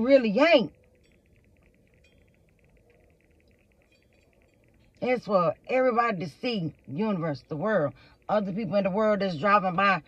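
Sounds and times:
fast high-pitched pulsing: 0.0 - 10.0.

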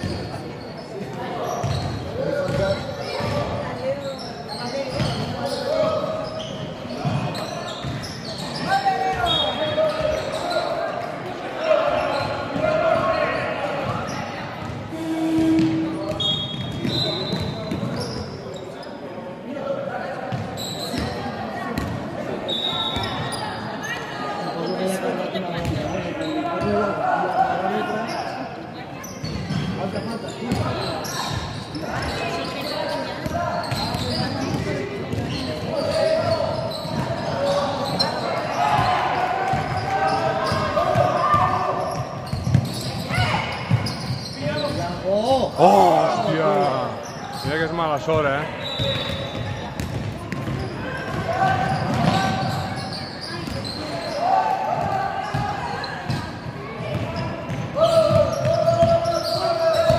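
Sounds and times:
sneaker squeaks: 0.0 - 19.1, 20.3 - 59.9
basketball bouncing on wooden court: 1.6 - 3.4, 33.2 - 37.3, 40.4 - 44.8, 48.8 - 52.6, 54.8 - 55.5, 56.9 - 59.1
people calling out: 45.5 - 46.8.

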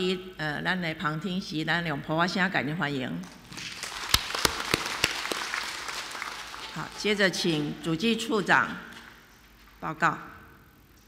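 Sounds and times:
loud single claps: 3.6 - 6.7
people applauding: 3.6 - 7.3.

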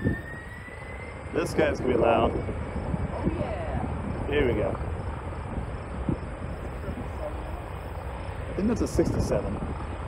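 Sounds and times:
distant jet airliner taking off: 0.0 - 10.0.

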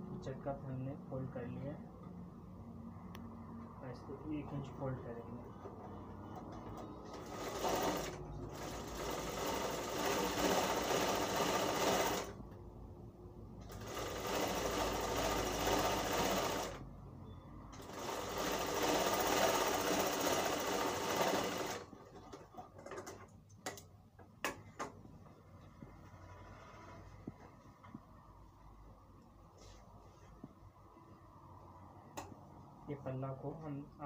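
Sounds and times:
sewing machine stitching: 7.0 - 12.4, 13.6 - 16.8, 17.7 - 23.2.

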